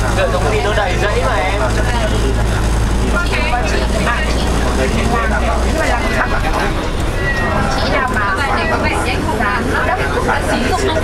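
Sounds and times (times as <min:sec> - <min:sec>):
people talking: 0:00.0 - 0:11.0
road noise: 0:00.0 - 0:11.0
vehicle engine drone: 0:00.0 - 0:11.0.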